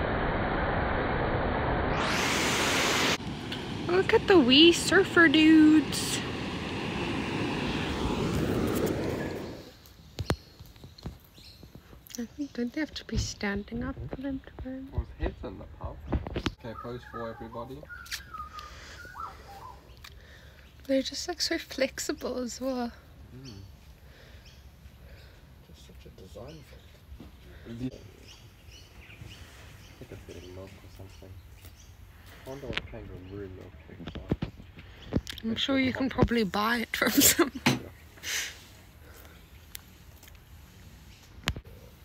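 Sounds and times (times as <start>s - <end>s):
surf: 0.0s - 9.8s
wind buffeting microphone: 3.2s - 10.4s
bird calling in whistled notes: 16.6s - 20.0s.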